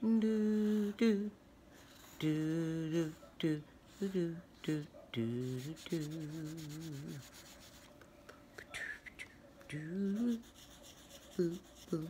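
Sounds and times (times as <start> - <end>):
drawing tool scratching on paper: 10.1 - 12.0.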